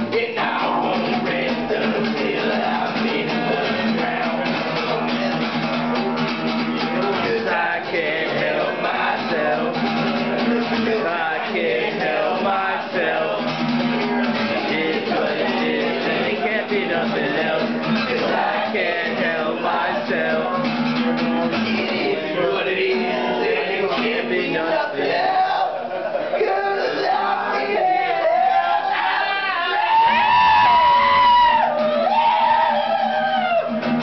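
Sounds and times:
acoustic guitar strumming: 0.0s - 25.6s, 30.0s - 34.0s.

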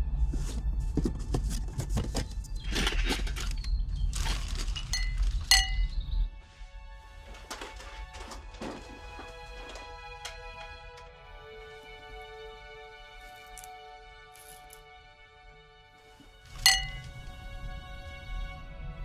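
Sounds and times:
film score music: 0.0s - 19.0s
objects handled in cardboard box: 0.2s - 5.8s, 7.2s - 9.9s
crumpled paper rustling: 1.3s - 5.5s, 7.2s - 9.8s
glassy clinks: 4.9s - 6.0s, 16.6s - 17.2s.

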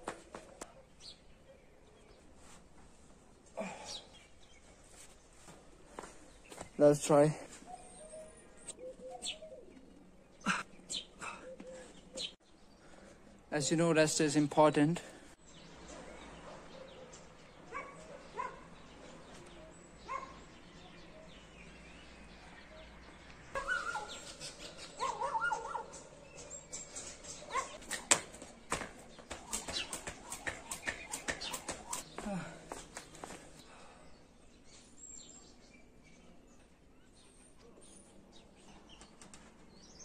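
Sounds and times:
dog barking: 17.7s - 18.7s, 20.0s - 20.4s, 25.0s - 25.9s, 27.5s - 27.8s.

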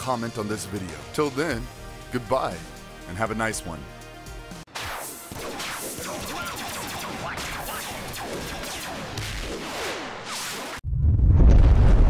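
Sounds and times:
deep explosion rumble: 10.8s - 12.0s.

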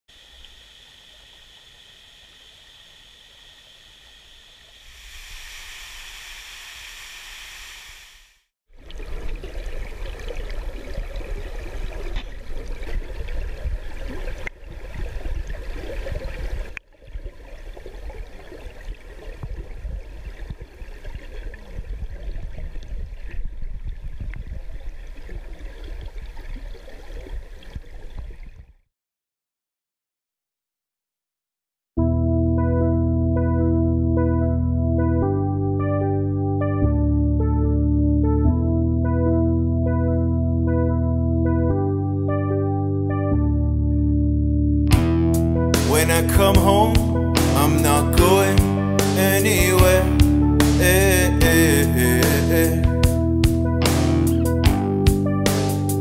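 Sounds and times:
faint outdoor ambience: 0.1s - 6.8s
underwater water rushing: 3.4s - 7.8s, 8.8s - 28.4s
bubbling: 8.8s - 28.7s
heavy low rumble: 44.0s - 55.3s.

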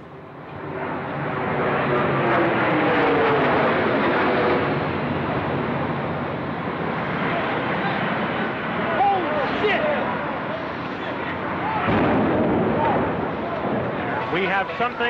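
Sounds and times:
jet airliner flying overhead: 0.0s - 15.0s.

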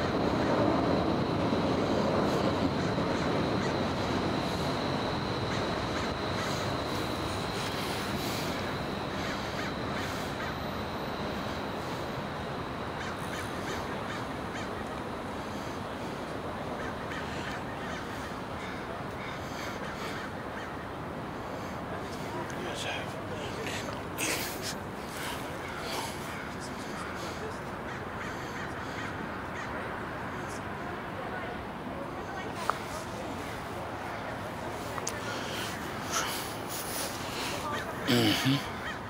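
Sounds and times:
steady background noise: 0.0s - 39.0s
steady background rush: 0.0s - 39.0s
crows cawing: 2.8s - 4.0s, 5.2s - 7.0s, 9.1s - 10.7s, 12.9s - 14.9s, 16.8s - 20.9s, 25.5s - 29.8s, 37.3s - 39.0s.

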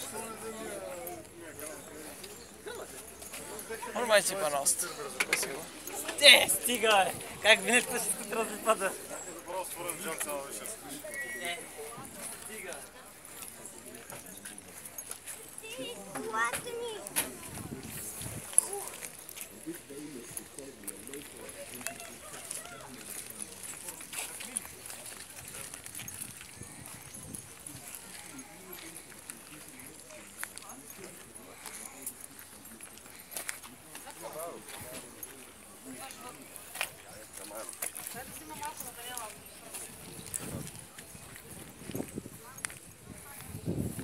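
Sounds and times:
people talking faintly: 0.0s - 44.0s
people's voices: 0.0s - 44.0s.

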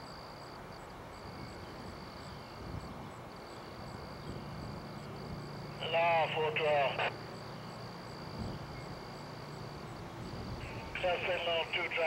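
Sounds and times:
distant diesel locomotive rumble: 0.0s - 12.0s.

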